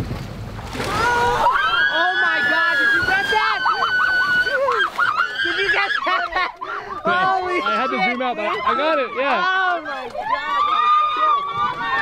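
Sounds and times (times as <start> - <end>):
people shrieking and laughing: 0.9 - 12.0.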